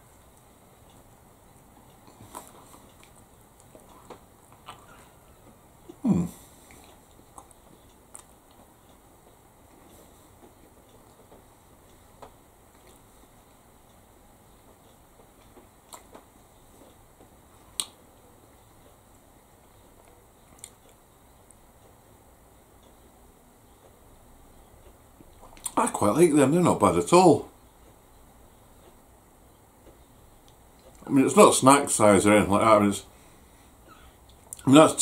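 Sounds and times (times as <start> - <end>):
quiet chewing of bread: 0.0 - 18.0, 18.7 - 22.0, 23.7 - 25.8, 27.8 - 29.1, 29.8 - 31.1
mouth and lip clicks: 1.6 - 5.0, 6.7 - 8.7, 15.3 - 18.0, 20.0 - 21.6, 24.9 - 25.8.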